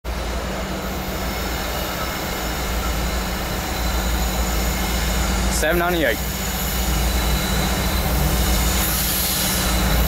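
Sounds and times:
diesel locomotive rumble: 0:00.0 - 0:10.0.

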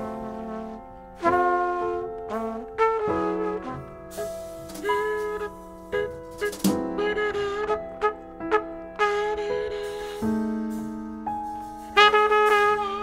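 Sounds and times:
double bass: 0:00.0 - 0:13.0
piano: 0:00.0 - 0:13.0
trumpet playing melody: 0:00.0 - 0:13.0
drums: 0:03.5 - 0:07.6, 0:09.6 - 0:13.0.

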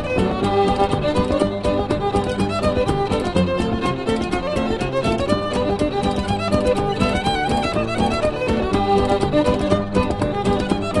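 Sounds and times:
fiddle playing a reel: 0:00.0 - 0:11.0.

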